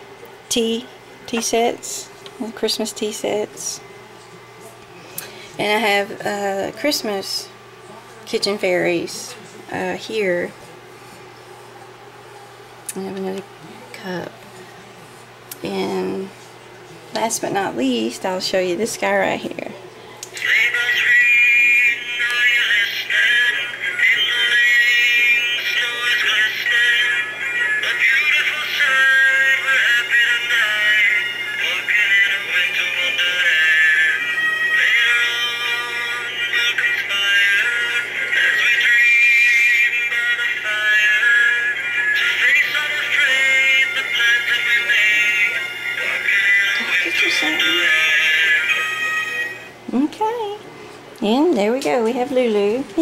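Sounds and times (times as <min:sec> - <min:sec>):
song with electronic singing: 0:20.2 - 0:49.8.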